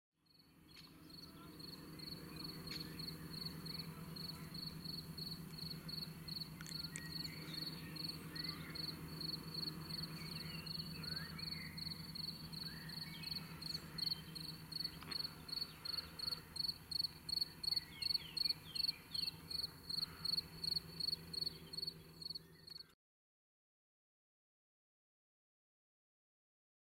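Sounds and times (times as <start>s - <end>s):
cricket chirping: 0.3s - 22.9s
low steady hum: 0.3s - 22.9s
faint bird calls: 0.7s - 22.9s.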